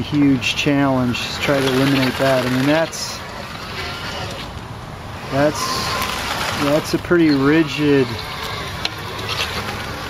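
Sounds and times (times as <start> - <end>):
robot tracks driving: 1.2 - 4.5, 5.2 - 10.0.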